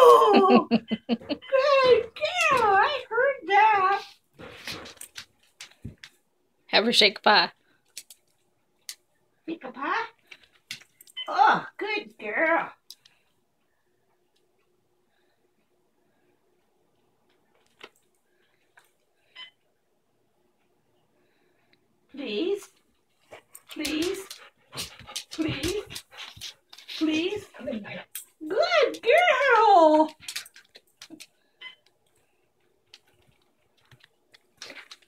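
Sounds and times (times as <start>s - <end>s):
dog claws clicking on tile: 23.5s - 31.4s, 32.8s - 35.0s.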